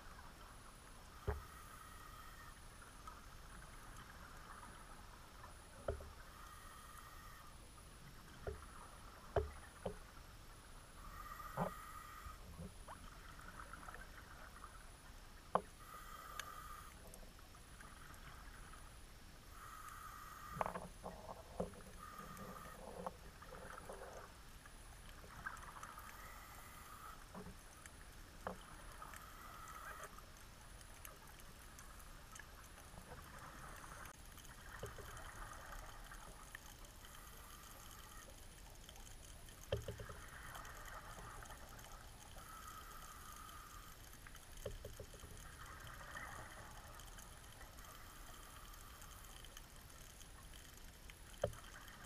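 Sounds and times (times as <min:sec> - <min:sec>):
thin steady whine: 0:00.0 - 0:52.0.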